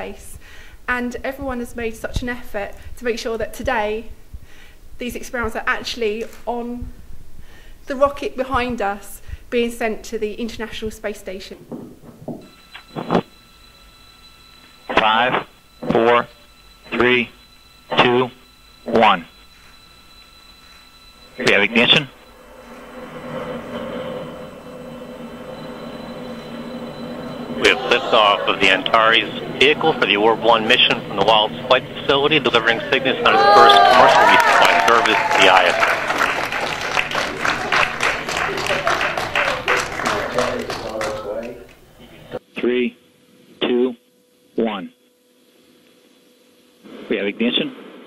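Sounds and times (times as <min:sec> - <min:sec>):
thin low hum: 0:00.0 - 0:33.2
rocket engines rumbling: 0:12.5 - 0:42.4.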